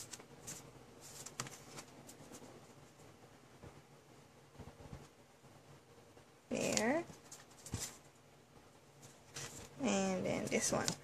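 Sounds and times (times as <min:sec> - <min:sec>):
paper cards rustling: 0:00.0 - 0:02.6, 0:06.6 - 0:08.1, 0:09.0 - 0:11.0.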